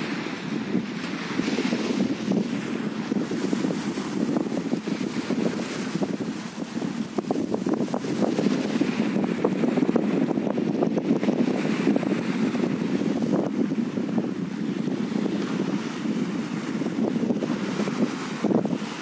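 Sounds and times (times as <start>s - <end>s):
small waves washing onto beach: 0.0s - 19.0s
wind buffeting microphone: 0.0s - 19.0s.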